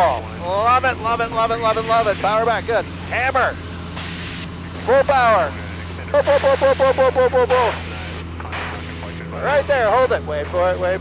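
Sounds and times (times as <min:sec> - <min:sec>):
airplane engine droning: 0:00.0 - 0:11.0.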